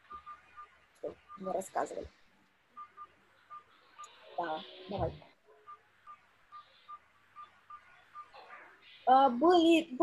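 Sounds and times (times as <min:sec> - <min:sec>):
short electronic beeps: 0:00.0 - 0:02.0, 0:02.7 - 0:08.4.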